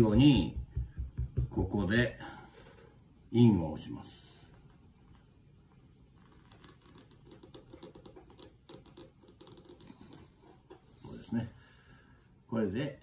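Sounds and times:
seal tapping and scratching: 0:06.5 - 0:10.9.

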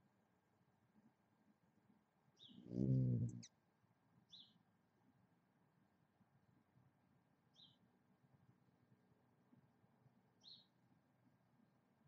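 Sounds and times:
faint bird chirps: 0:02.4 - 0:03.6, 0:04.3 - 0:04.6, 0:07.5 - 0:07.8, 0:10.4 - 0:10.8
low-pitched vocal sound: 0:02.6 - 0:03.4.

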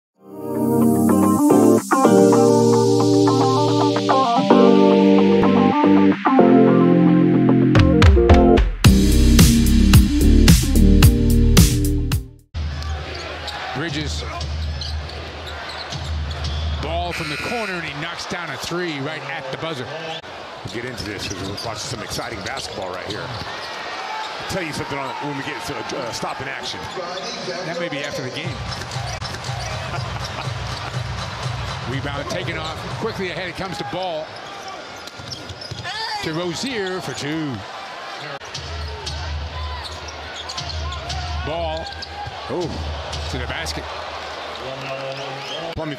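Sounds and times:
music: 0:00.2 - 0:12.7, 0:28.5 - 0:33.1.

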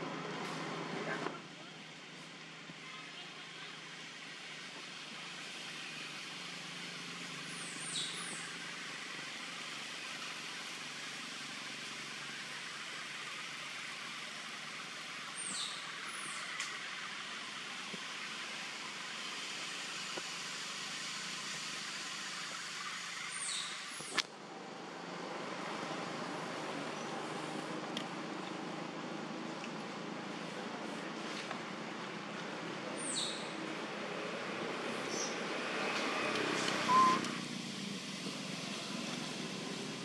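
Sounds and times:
outdoor background hiss: 0:00.0 - 0:40.0.

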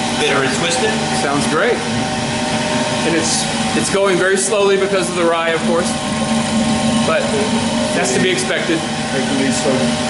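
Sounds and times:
machinery low hum: 0:00.0 - 0:10.0.

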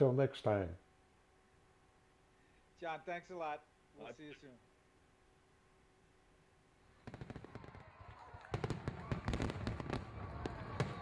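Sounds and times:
fireworks popping and crackling: 0:06.9 - 0:11.0.

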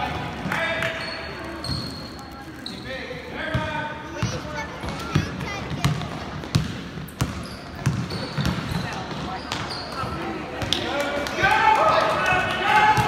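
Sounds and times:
sneakers squeaking: 0:00.3 - 0:10.9
basketball bouncing on wooden floor: 0:03.5 - 0:09.7.

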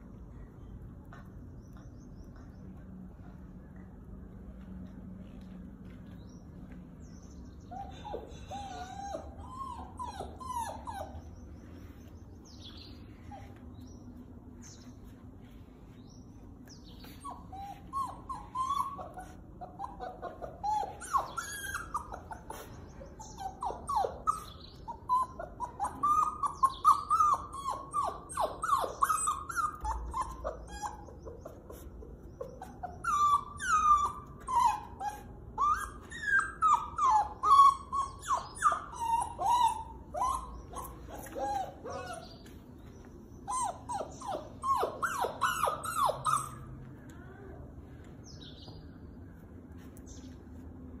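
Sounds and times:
puppy whining and whimpering: 0:07.5 - 0:14.0, 0:16.6 - 0:46.9.

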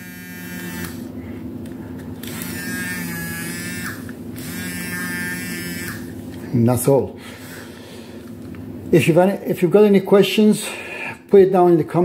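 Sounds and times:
electric motor buzzing: 0:00.0 - 0:01.2, 0:02.2 - 0:06.2
high motor whine: 0:00.0 - 0:01.2, 0:02.0 - 0:06.3.

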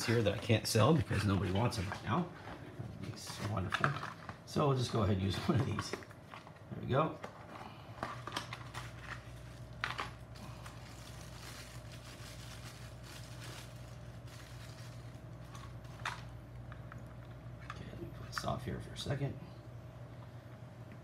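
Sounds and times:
low electrical hum: 0:00.0 - 0:21.0
plastic bag crinkling: 0:07.4 - 0:16.8.

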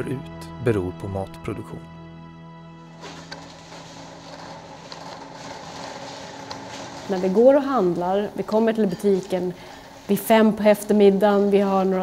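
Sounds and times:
shopping cart rolling: 0:03.0 - 0:09.5.

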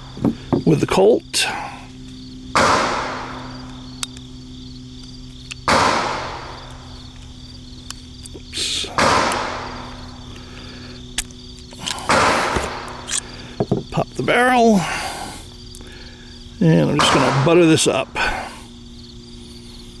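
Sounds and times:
insects buzzing: 0:00.0 - 0:20.0
gunshots with echoing tail: 0:02.6 - 0:03.6, 0:05.7 - 0:06.7, 0:09.0 - 0:10.1, 0:12.1 - 0:13.1, 0:17.0 - 0:17.6.

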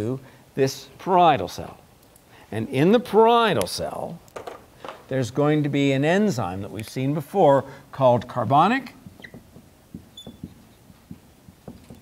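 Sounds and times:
marker squeaking on whiteboard: 0:09.0 - 0:12.0.

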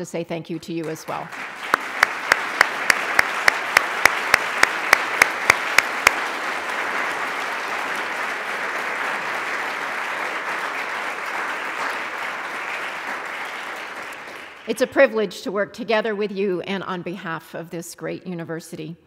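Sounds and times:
close sharp hand claps: 0:01.0 - 0:14.7
audience applauding: 0:01.0 - 0:14.8.

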